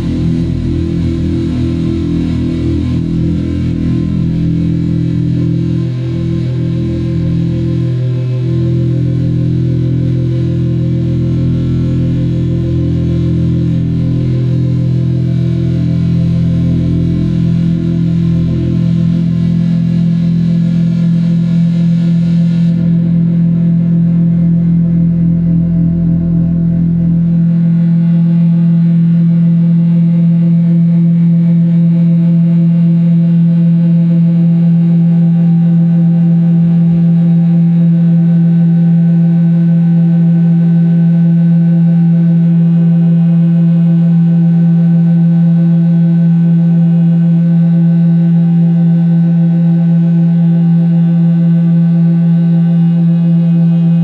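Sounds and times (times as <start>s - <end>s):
deep rumble: 0.0s - 29.2s
sustained drone chord: 0.0s - 31.9s, 33.2s - 54.0s.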